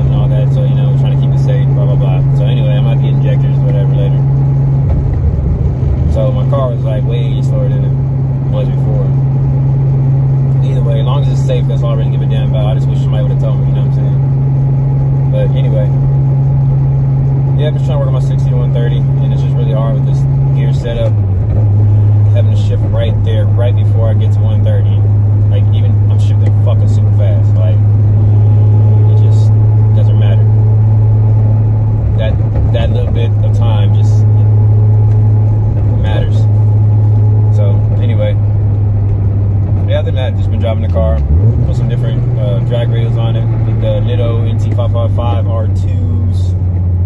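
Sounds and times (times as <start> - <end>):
man talking: 0.0 - 4.3, 6.1 - 9.2, 10.6 - 14.3, 15.3 - 16.0, 17.5 - 21.2, 22.2 - 27.9, 28.9 - 30.6, 32.1 - 34.5, 35.8 - 36.5, 37.5 - 38.4, 39.8 - 46.6
car engine drone inside cabin: 0.0 - 47.0.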